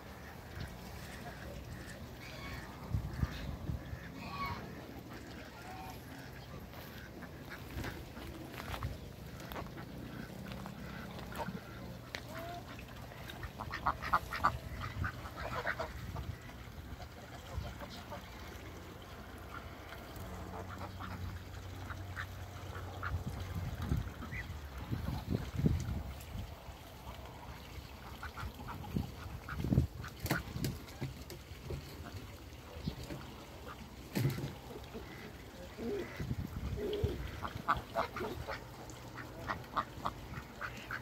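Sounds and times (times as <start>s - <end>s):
ducks quacking: 0.0s - 25.7s, 27.6s - 41.0s.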